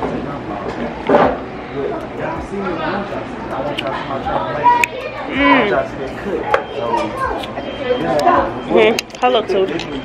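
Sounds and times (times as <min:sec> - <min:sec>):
murmur of dining room: 0:00.0 - 0:10.0.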